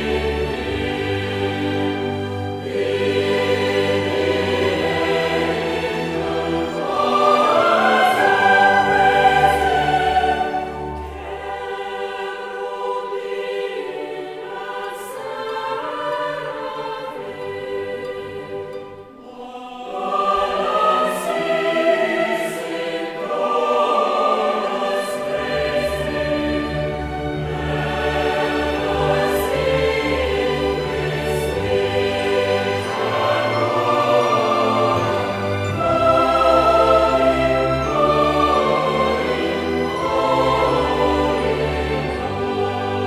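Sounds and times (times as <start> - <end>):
choir singing: 0.0 - 43.0.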